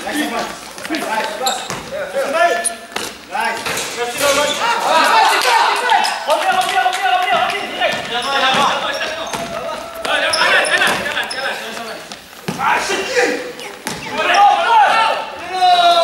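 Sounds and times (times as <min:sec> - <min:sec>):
players calling out: 0:00.0 - 0:16.0
basketball bouncing on wooden floor: 0:01.5 - 0:02.0, 0:07.3 - 0:09.6, 0:13.8 - 0:14.3.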